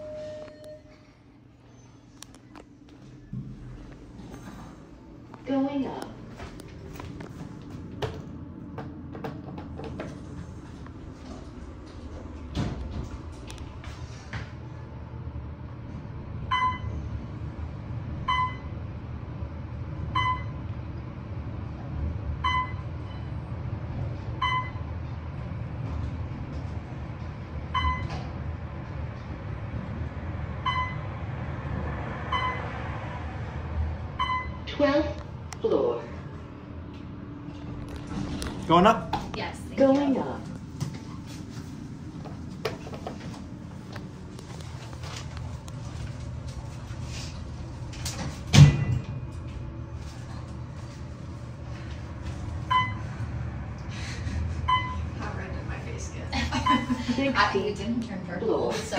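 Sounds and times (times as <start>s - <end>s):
elevator humming: 0.0s - 58.9s
elevator door: 7.1s - 14.6s, 25.6s - 31.2s, 37.5s - 39.2s, 47.7s - 50.7s.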